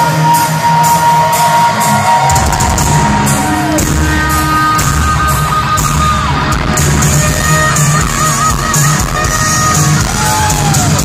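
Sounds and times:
electric guitar bending note: 0.0 - 11.0
live rock band: 0.0 - 11.0.

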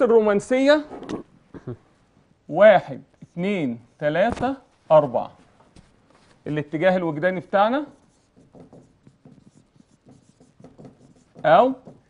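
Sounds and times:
marker pen writing on whiteboard: 2.9 - 4.6, 7.3 - 12.0.

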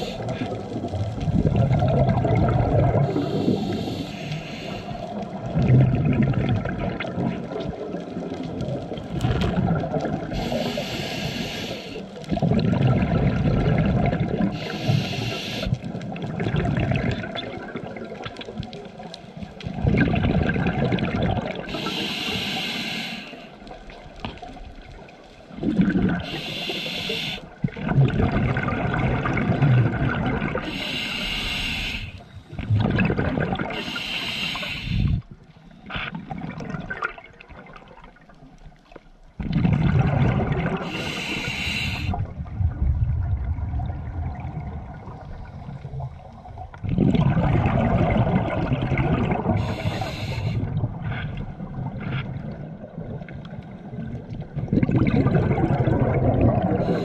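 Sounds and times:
bubbling exhaled air: 0.0 - 18.8, 19.6 - 23.8, 25.5 - 38.2, 39.4 - 57.0
hissing regulator inhalations: 3.0 - 5.2, 10.3 - 12.1, 14.5 - 15.8, 21.7 - 23.6, 26.2 - 27.5, 30.6 - 32.6, 33.7 - 36.0, 40.8 - 42.2, 49.5 - 51.3, 56.8 - 57.0.

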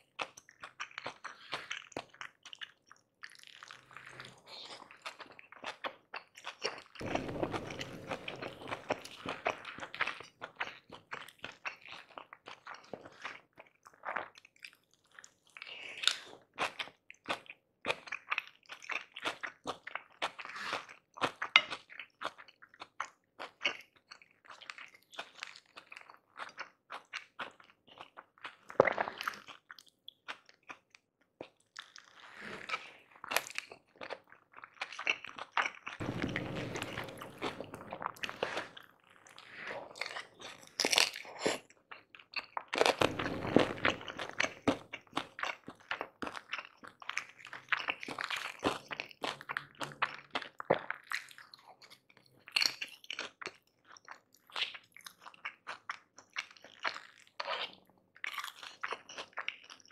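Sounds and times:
crunchy chewing: 0.1 - 59.9.

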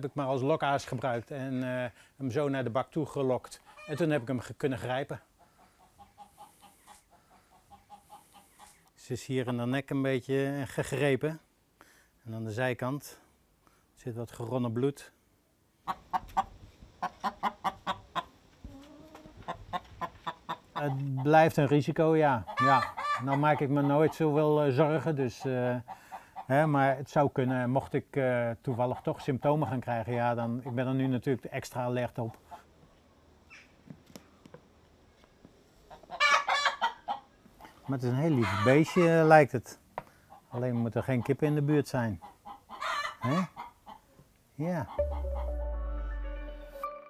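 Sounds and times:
hen clucking: 3.6 - 4.4, 5.2 - 8.9, 15.8 - 24.6, 30.4 - 31.0, 35.8 - 39.3, 40.3 - 44.2, 44.8 - 45.6
chicken calling: 15.8 - 21.4, 22.4 - 24.1, 35.9 - 37.7, 38.3 - 39.1, 42.2 - 44.1, 44.8 - 45.8.

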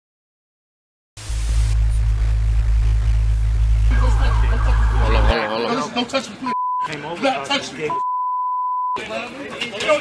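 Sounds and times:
censor bleep tone: 3.3 - 5.4, 6.6 - 6.9, 7.9 - 9.0
voices shouting: 3.9 - 5.6.

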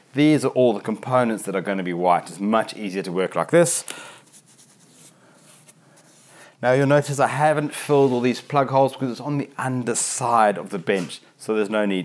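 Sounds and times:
paintbrush strokes on wood: 4.3 - 6.5, 7.8 - 8.7.

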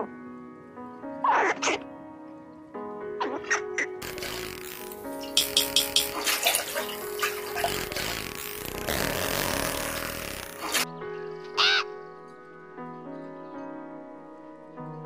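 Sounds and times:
background music: 0.0 - 15.0
dolphin clicks: 4.0 - 8.1
water noise: 4.0 - 10.9.

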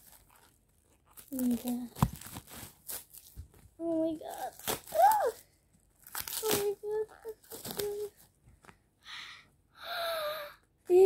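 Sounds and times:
girl speaking: 1.3 - 2.0, 3.8 - 5.4, 6.4 - 8.2
girl gasping: 9.0 - 10.6.

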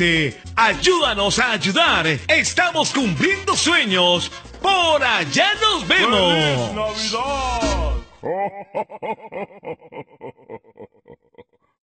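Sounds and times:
woman laughing: 8.2 - 11.7.

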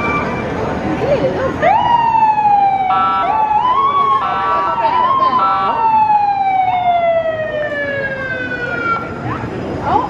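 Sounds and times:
ambulance siren sweeping: 0.0 - 0.7, 1.6 - 10.0.

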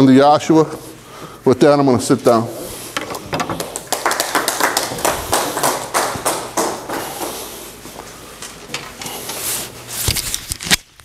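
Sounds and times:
audience applauding: 3.5 - 7.7.

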